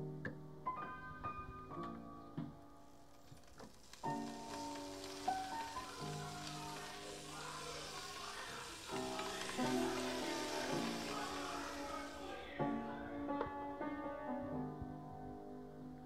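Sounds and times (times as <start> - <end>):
background music: 0.0 - 16.0
tablets fizzing in water: 3.2 - 12.6.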